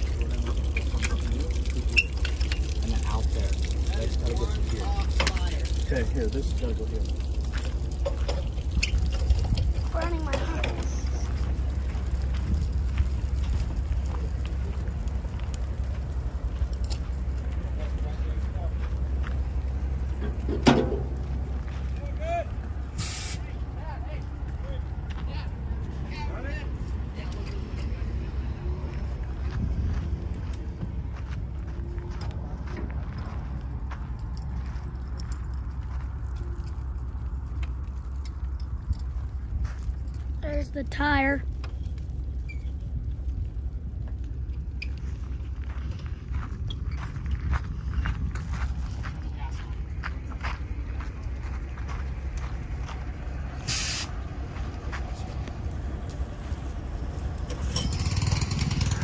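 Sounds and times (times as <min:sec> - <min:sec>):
fire burning with low rumble: 0:00.0 - 0:59.0
fire crackling: 0:00.0 - 0:59.0
short hiss: 0:23.0 - 0:23.5, 0:53.6 - 0:54.2.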